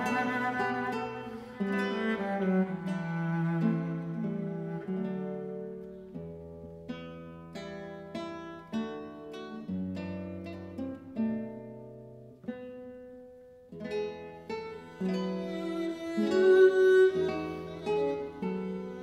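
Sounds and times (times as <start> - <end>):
classical guitar plucked chords: 0.0 - 19.0.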